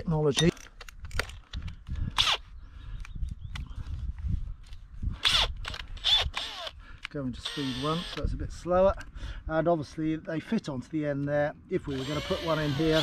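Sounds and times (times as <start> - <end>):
drill chuck clicks and rasping: 0.4 - 2.4, 4.6 - 8.3, 11.2 - 13.0
wind rumble on microphone: 0.9 - 7.0, 8.1 - 9.8.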